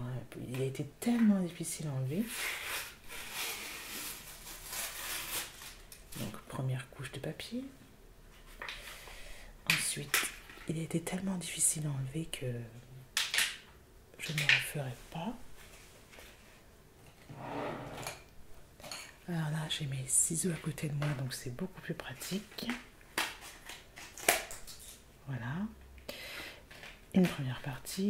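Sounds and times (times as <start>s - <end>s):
paper packaging tearing: 2.3s - 6.0s.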